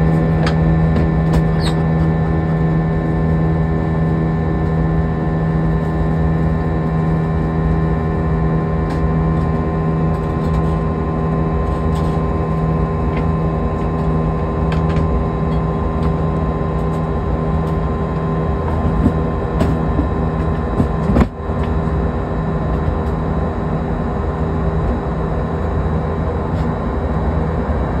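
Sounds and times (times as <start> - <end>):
aircraft engine and airflow drone: 0.0 - 28.0
low hum: 0.0 - 28.0.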